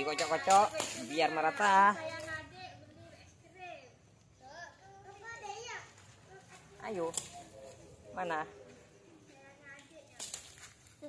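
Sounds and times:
children talking and calling: 0.0s - 11.0s.

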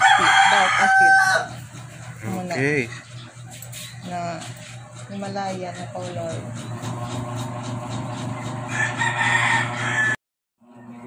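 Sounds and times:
rooster crowing: 0.0s - 1.8s, 8.6s - 10.2s.

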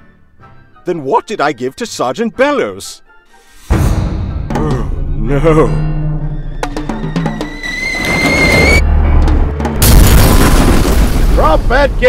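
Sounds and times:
cartoon music with timpani: 3.4s - 9.9s
rising whistle tone: 6.2s - 8.9s
loud cartoon explosion: 9.8s - 12.0s.

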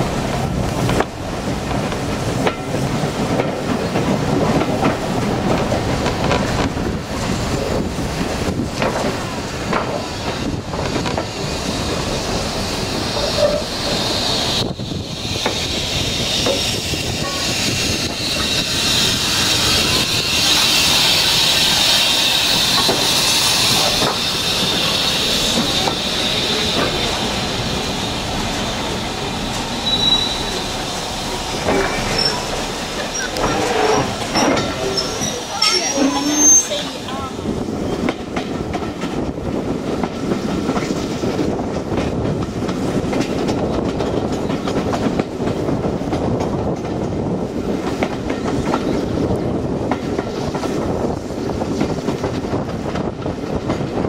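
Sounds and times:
train carriage rumbling on rails: 0.0s - 54.0s
clicking over rail joints: 0.3s - 6.8s, 31.6s - 36.2s
steam locomotive hissing steam: 9.2s - 38.1s
high wheel squeals: 13.1s - 29.1s, 29.8s - 31.0s, 31.6s - 37.3s.

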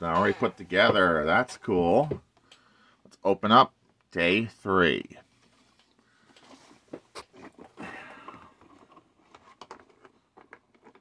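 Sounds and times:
cardboard rustling and scraping: 5.3s - 11.0s.

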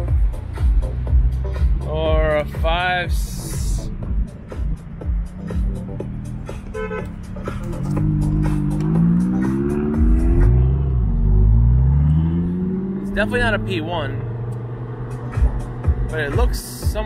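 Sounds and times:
car engine accelerating: 0.0s - 17.0s.

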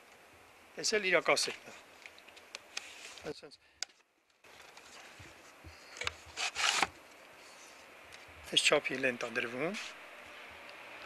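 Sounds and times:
wood scraping on wood: 4.5s - 6.9s.

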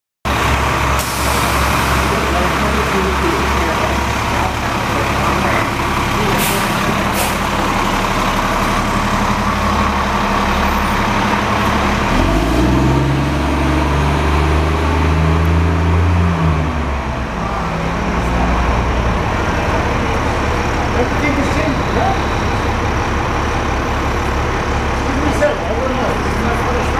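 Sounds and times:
diesel bus engine: 0.2s - 26.9s.

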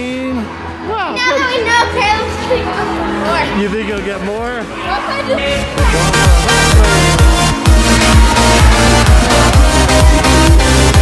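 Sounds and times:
electronic music: 0.0s - 11.0s
child talking: 1.1s - 3.6s.

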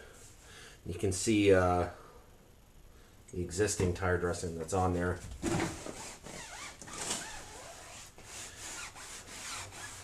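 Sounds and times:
foam block rubbing tire: 5.8s - 10.0s.

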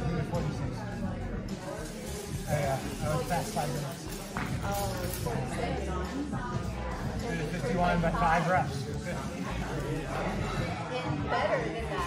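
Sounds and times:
background chatter: 0.0s - 12.0s
indistinct talking: 0.0s - 12.0s.

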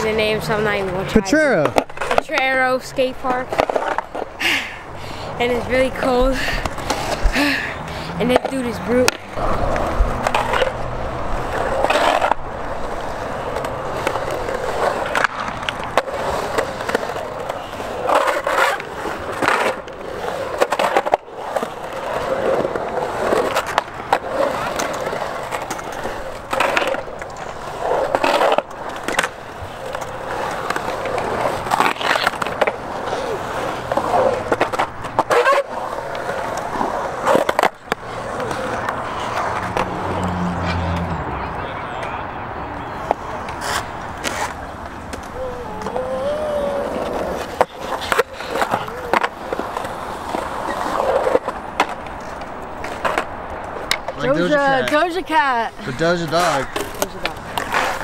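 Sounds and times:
skateboard wheels rolling on concrete: 0.0s - 58.0s
skateboards clacking on concrete: 0.0s - 58.0s.

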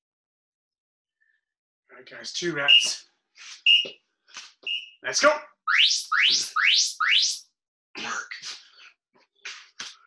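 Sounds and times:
rising whistle chirps: 2.7s - 3.0s, 3.7s - 3.9s, 5.7s - 7.5s.

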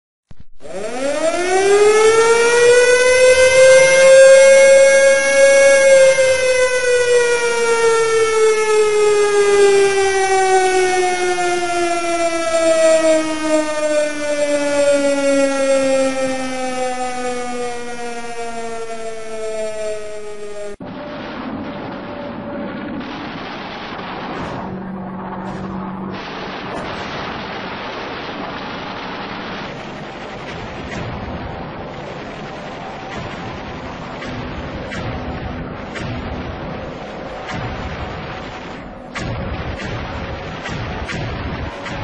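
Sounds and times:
air-raid siren wailing: 0.6s - 42.0s.

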